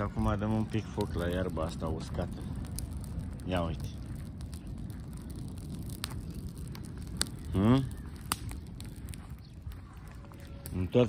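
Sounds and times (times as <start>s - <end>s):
fire crackling: 0.0s - 11.0s
fire roaring: 0.0s - 11.0s.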